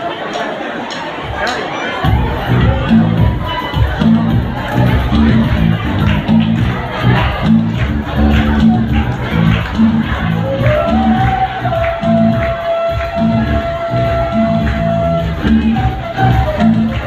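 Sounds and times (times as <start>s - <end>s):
bass-heavy beat: 2.0s - 17.0s.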